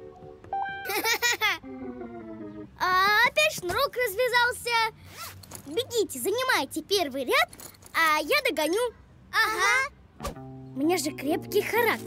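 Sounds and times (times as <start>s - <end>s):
cartoon character giggling: 0.8s - 1.7s
light background music: 10.2s - 12.0s.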